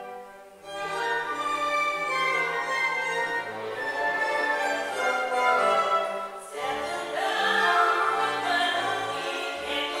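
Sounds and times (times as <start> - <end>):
woman singing with vibrato: 4.9 - 10.0.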